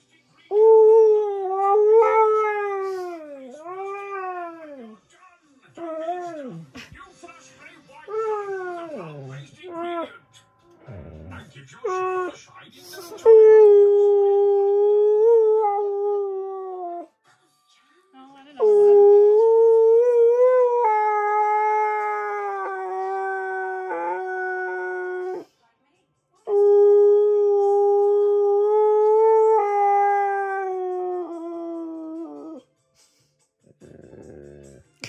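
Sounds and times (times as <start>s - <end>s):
dog howling: 0.5s - 4.9s, 8.1s - 10.1s, 18.6s - 25.4s
dog low groan: 10.8s - 11.5s, 33.7s - 34.8s.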